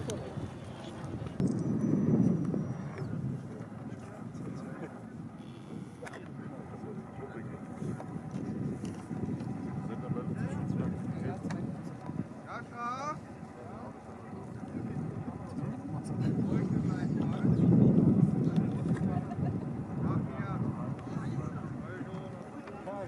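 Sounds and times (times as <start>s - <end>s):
faint voices talking: 0.0s - 23.0s
wind rumbling on microphone: 0.0s - 23.0s.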